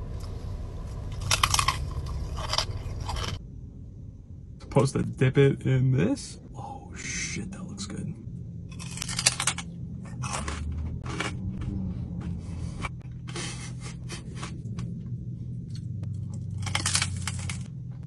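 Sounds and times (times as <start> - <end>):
low hum: 0.0 - 18.0
crunching of crispy pork skin: 1.1 - 3.4, 8.7 - 11.3, 16.1 - 17.8.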